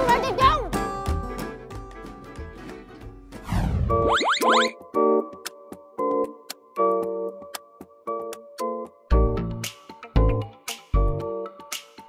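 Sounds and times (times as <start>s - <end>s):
light background music: 0.0s - 12.0s
rising cartoon boings: 4.0s - 4.7s.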